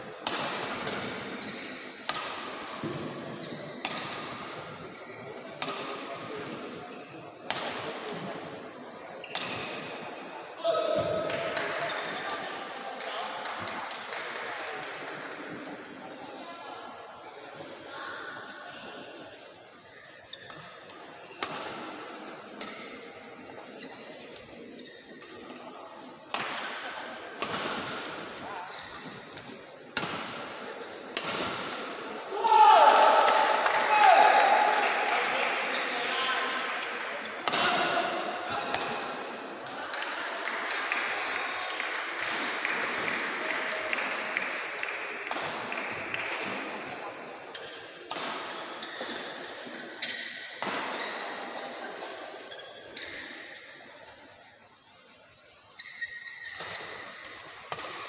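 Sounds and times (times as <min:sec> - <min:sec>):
loud shout: 0:32.3 - 0:35.4
people shouting and cheering: 0:32.3 - 0:36.4.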